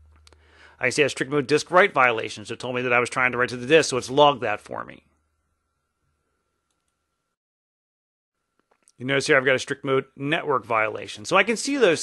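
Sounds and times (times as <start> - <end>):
thin steady hum: 0.0 - 7.4.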